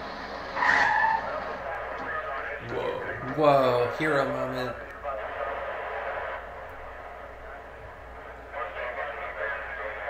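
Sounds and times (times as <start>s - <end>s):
car tyres screeching: 0.0s - 2.5s
low background hum: 0.0s - 10.0s.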